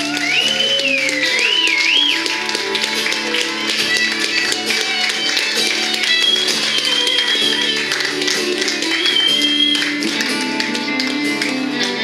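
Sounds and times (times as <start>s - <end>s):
electric guitars: 0.0s - 12.0s
live rock band playing: 0.0s - 12.0s
violin: 0.0s - 12.0s.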